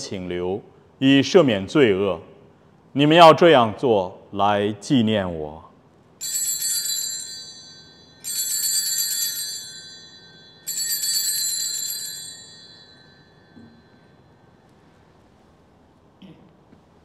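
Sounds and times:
altar bells jingling: 6.2s - 14.3s.

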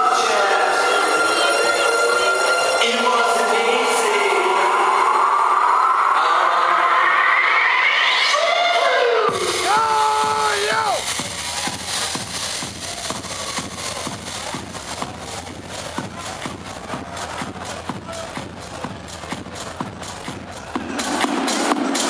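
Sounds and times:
electronic dance music: 0.0s - 22.0s.

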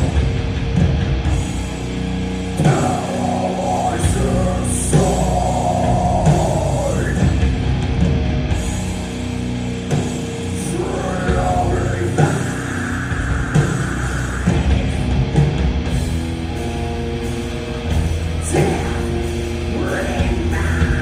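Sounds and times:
bass guitar: 0.0s - 21.0s
drum kit: 0.0s - 21.0s
electric guitars: 0.0s - 21.0s.

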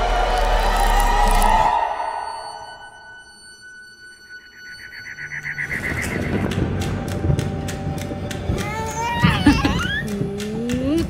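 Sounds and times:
sustained high notes: 0.0s - 6.8s.

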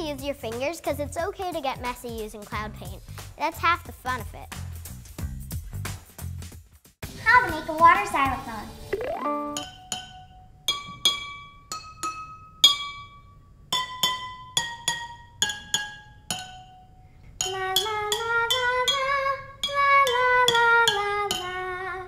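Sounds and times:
held tune stepping up and down: 8.1s - 13.1s
spoon striking water glasses: 9.5s - 16.8s, 17.4s - 21.6s.

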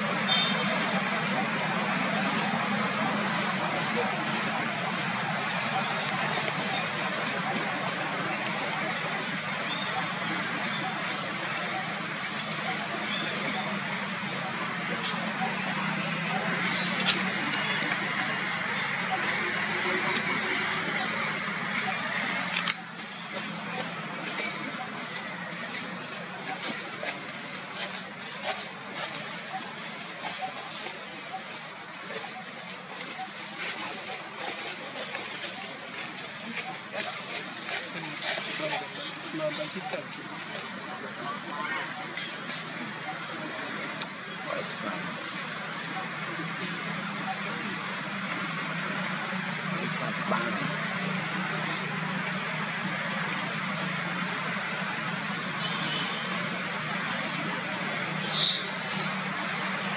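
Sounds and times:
indistinct voices: 0.0s - 59.9s
outdoor background noise: 0.0s - 59.9s.

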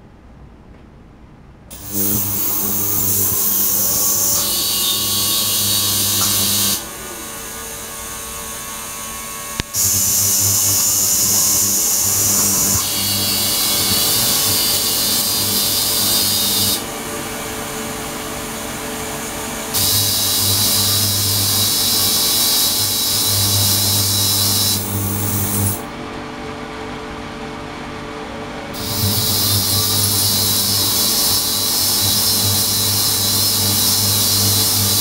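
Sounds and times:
ultrasonic tank hiss and whine: 1.6s - 26.0s, 28.4s - 35.0s
low buzz: 1.7s - 35.0s.

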